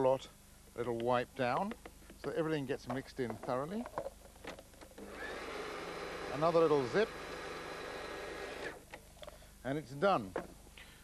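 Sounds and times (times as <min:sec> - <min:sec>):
food processor running: 0:05.0 - 0:08.7.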